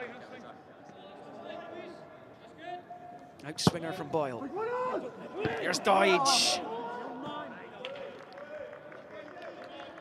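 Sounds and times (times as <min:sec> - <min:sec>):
players shouting: 0:04.6 - 0:07.3.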